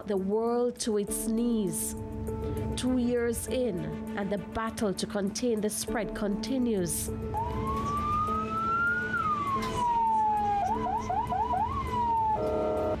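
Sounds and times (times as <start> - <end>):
emergency siren wailing and yelping: 7.4 - 13.0.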